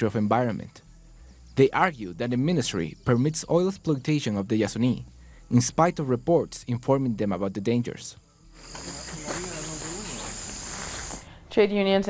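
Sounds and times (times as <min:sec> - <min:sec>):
faint wavering calls: 0:08.5 - 0:11.2
insects chorus: 0:08.5 - 0:11.2.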